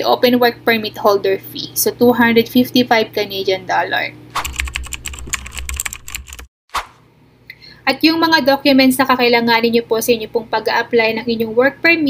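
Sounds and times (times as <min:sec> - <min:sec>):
short swish: 0:04.3 - 0:04.8, 0:06.7 - 0:07.1
keyboard key clicks: 0:04.4 - 0:06.4.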